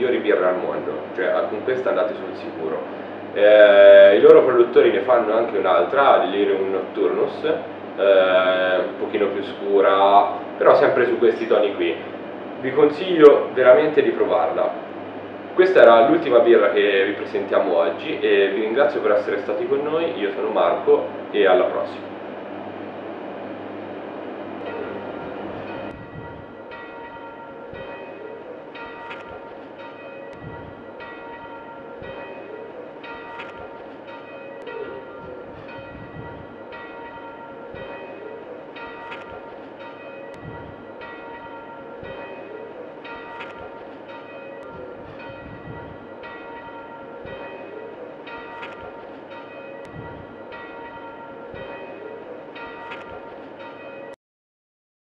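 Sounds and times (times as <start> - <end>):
bells ringing: 24.6 - 54.2.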